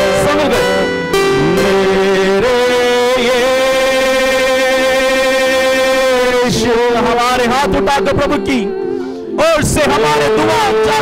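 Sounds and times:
singers sustaining a note: 0.0s - 6.9s
keyboard accompaniment: 0.0s - 11.0s.

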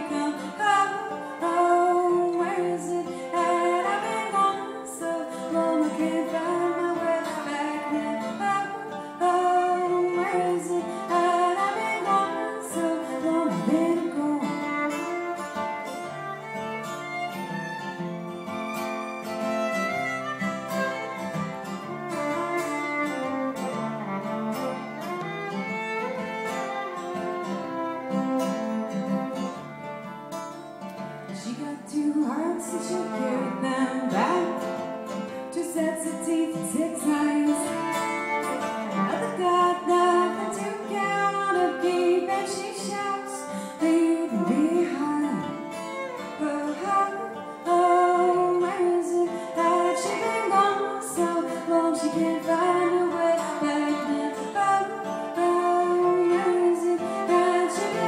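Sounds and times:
fiddle melody with sliding notes: 0.0s - 58.0s
strummed acoustic guitar: 0.0s - 58.0s.

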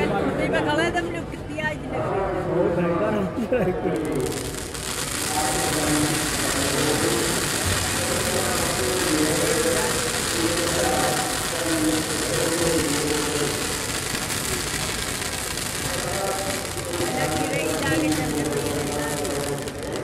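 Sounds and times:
crowd voices: 0.0s - 20.0s
fireworks hissing: 3.9s - 20.0s.

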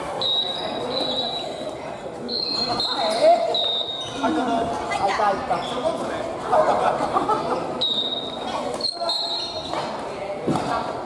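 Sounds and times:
sports shoes squeaking: 0.1s - 4.4s, 5.5s - 6.2s, 7.8s - 10.1s.

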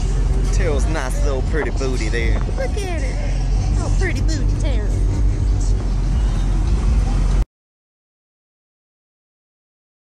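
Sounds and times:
heavy bass from car subwoofers: 0.0s - 7.4s.

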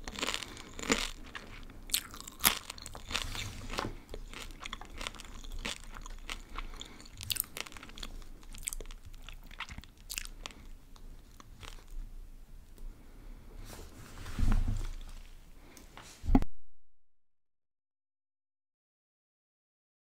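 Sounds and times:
crunchy snack chewing: 0.0s - 12.0s.

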